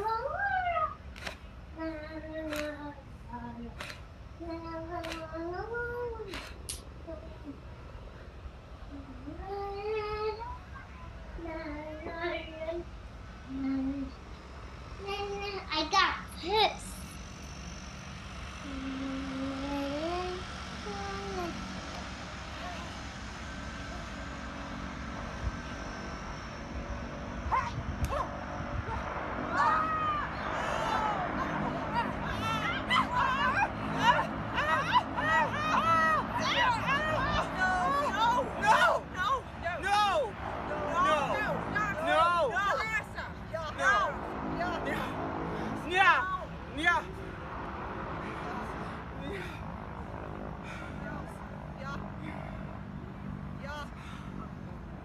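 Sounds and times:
rising-and-falling vocal cries: 0:00.0 - 0:01.1, 0:27.4 - 0:47.0
voices making wordless sounds: 0:27.5 - 0:52.8.

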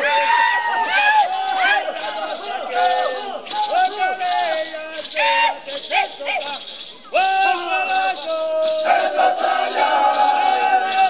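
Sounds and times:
men chanting: 0:00.0 - 0:06.6, 0:07.2 - 0:11.0
rattles shaken: 0:00.0 - 0:11.0.

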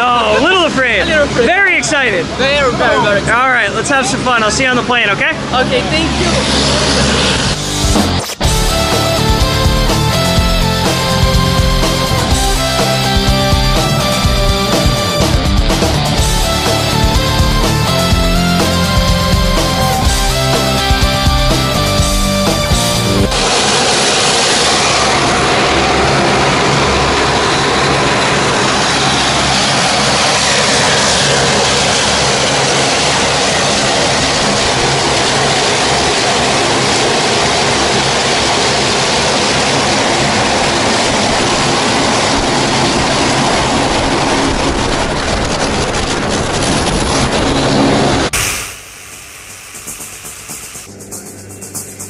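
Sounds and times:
propeller airplane engine: 0:00.0 - 0:52.0
music: 0:07.2 - 0:24.7, 0:49.4 - 0:52.0.

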